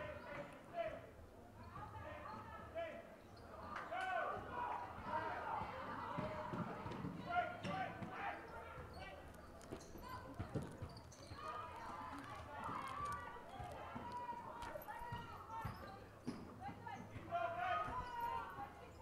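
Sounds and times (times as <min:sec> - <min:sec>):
voices in large hall: 0:00.0 - 0:19.0.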